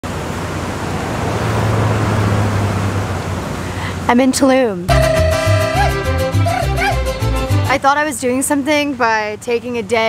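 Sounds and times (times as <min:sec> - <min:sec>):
low hum: 0:04.9 - 0:07.6.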